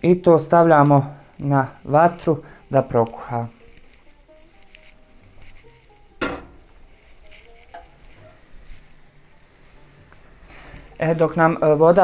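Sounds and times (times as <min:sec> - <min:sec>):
faint background music: 0:00.0 - 0:12.0
metal pot clanking on stove grate: 0:06.2 - 0:06.6.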